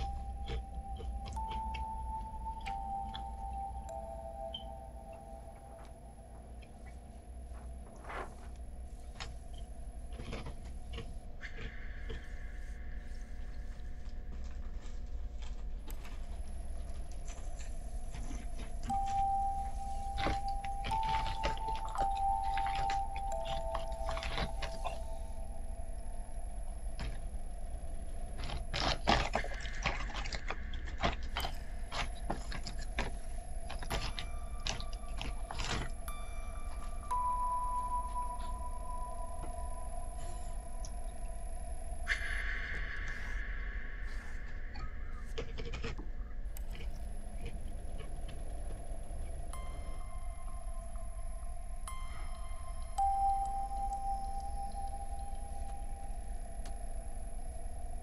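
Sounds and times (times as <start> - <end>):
held tones film score: 0.0 - 58.0.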